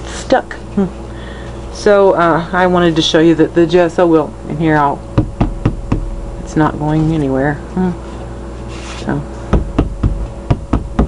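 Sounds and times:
taps on stretched canvas: 9.5s - 11.0s.

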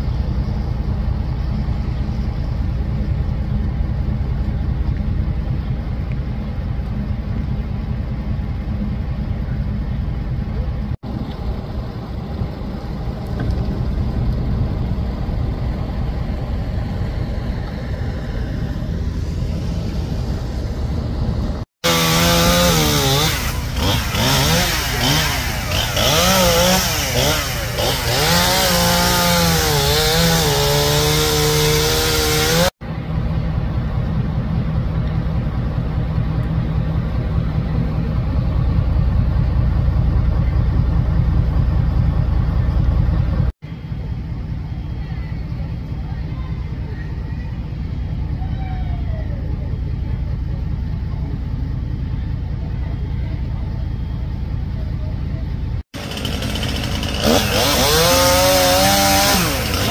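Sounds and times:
steady low rumble: 0.0s - 21.7s, 32.8s - 55.9s
chainsaw revving: 21.8s - 32.7s, 56.0s - 59.9s.

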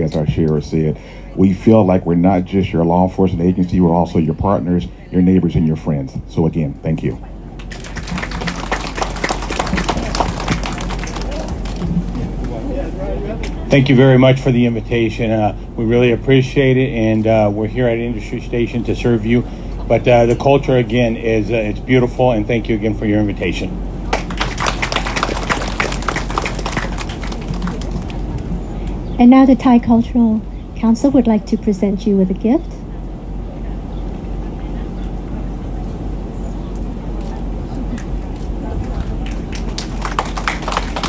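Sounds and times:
crowd applauding: 7.6s - 12.6s, 24.0s - 28.5s, 39.2s - 41.0s.

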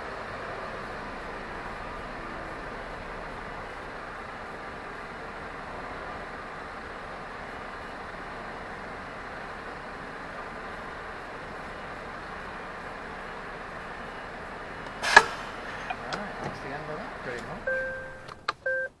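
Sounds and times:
lorry engine and cab noise: 0.0s - 19.0s
sharp loud click: 14.9s - 16.0s
short electronic beeps: 17.6s - 19.0s.

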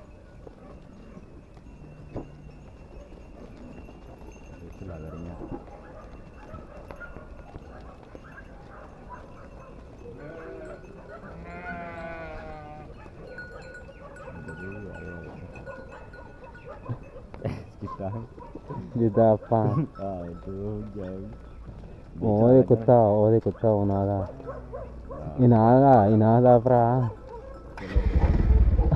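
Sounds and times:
sheep bleating: 10.2s - 13.0s.

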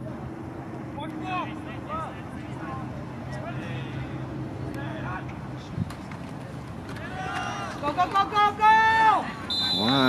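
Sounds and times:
distant shouting voices: 6.9s - 10.0s.

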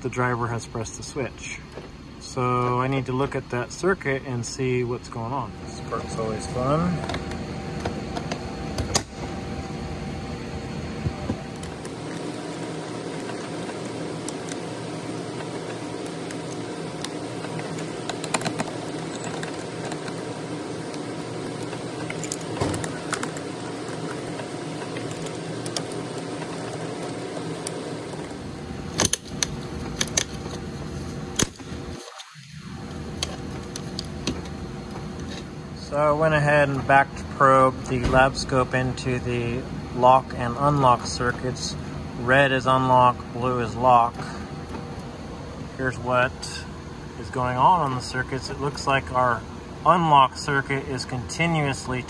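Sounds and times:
steady background hum: 0.0s - 52.0s.

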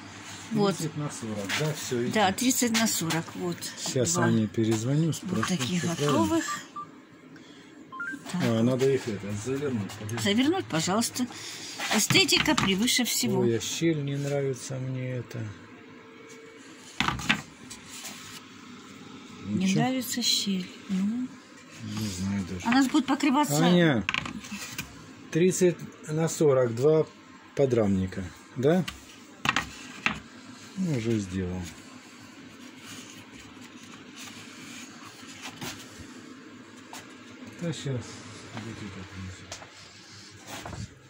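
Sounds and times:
workshop background noise: 0.0s - 41.0s.

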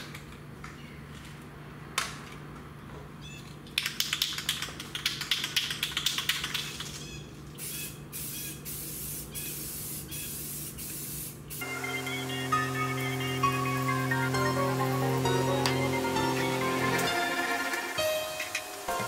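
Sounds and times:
spray can hissing bursts: 7.6s - 19.0s
background music: 11.6s - 19.0s.

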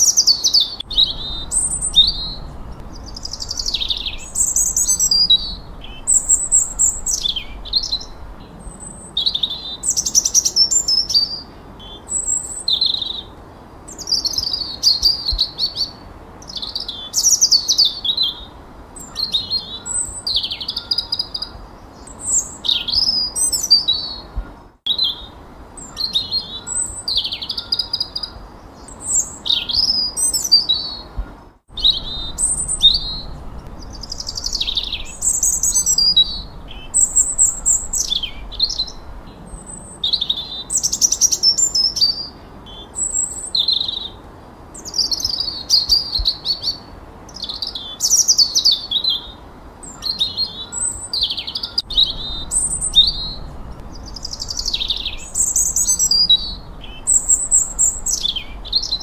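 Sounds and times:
songbirds singing: 0.0s - 59.0s.

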